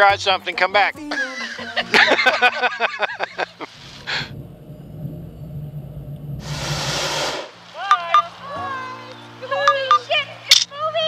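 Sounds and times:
propane burner hissing and roaring: 3.2s - 7.8s.

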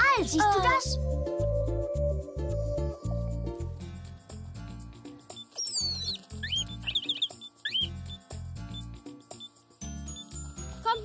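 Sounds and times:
cartoon bird chirping: 5.4s - 8.9s.

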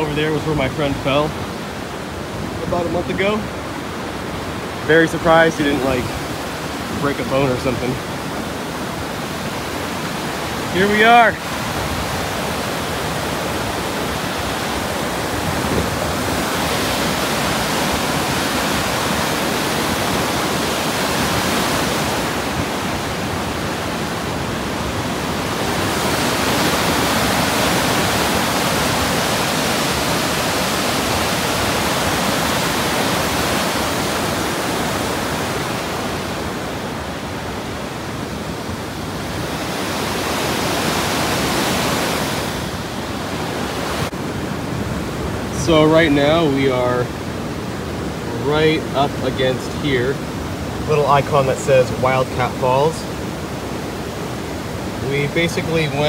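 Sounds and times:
waterfall and rapids rushing: 0.0s - 56.0s.

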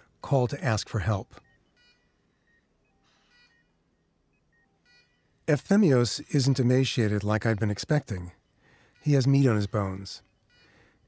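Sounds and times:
short multi-tone beep: 1.4s - 11.0s
soft single beeps: 1.4s - 11.0s.

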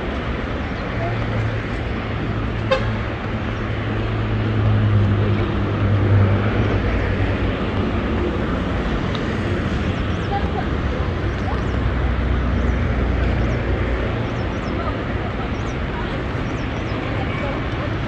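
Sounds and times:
street traffic: 0.0s - 18.0s
vehicle engine humming: 0.0s - 18.0s.

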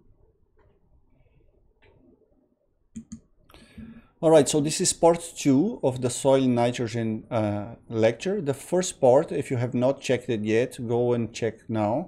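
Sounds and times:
person speaking: 3.0s - 3.2s.

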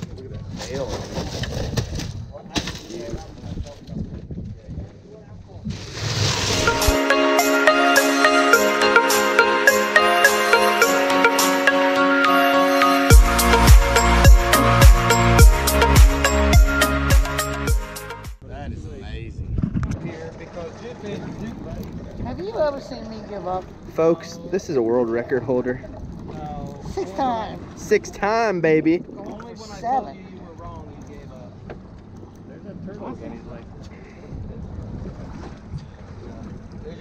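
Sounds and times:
background music: 6.6s - 18.4s.

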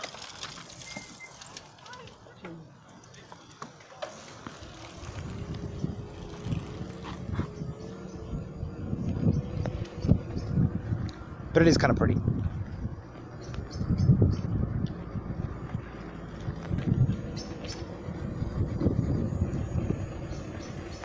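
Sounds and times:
thin motor whine: 4.3s - 11.6s
tyre and wind rumble: 4.3s - 21.0s.

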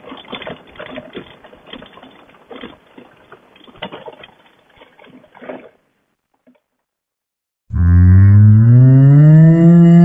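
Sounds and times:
cow mooing: 7.7s - 10.0s.

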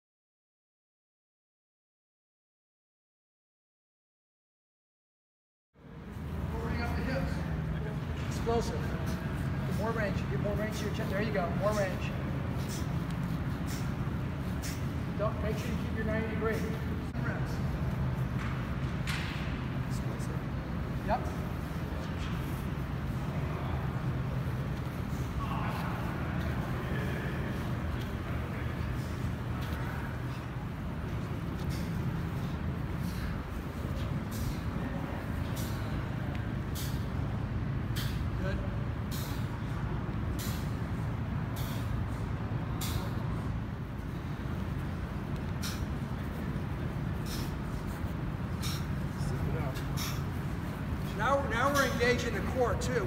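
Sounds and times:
low background hum: 5.8s - 53.0s
legs swishing across artificial turf: 6.0s - 53.0s.

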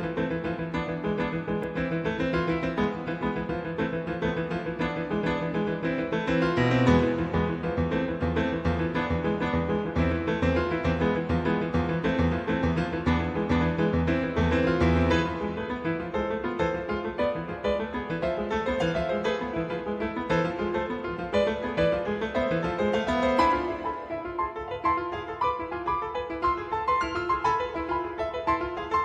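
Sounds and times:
solo piano: 0.0s - 29.0s.

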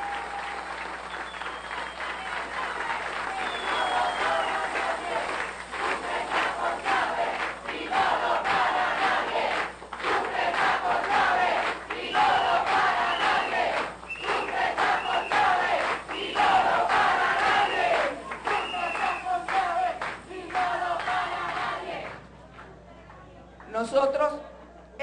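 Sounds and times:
crowd chanting in unison: 3.5s - 22.2s.

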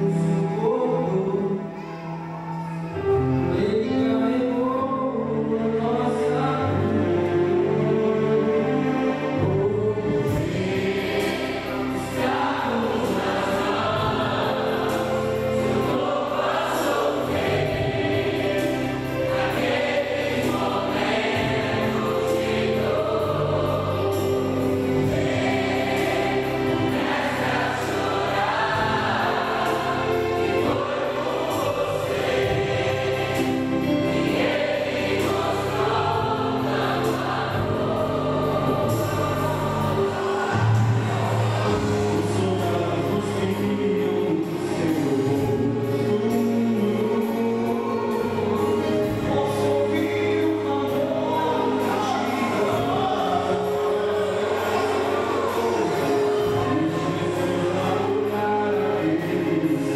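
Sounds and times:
choir singing gospel song: 0.0s - 59.9s.

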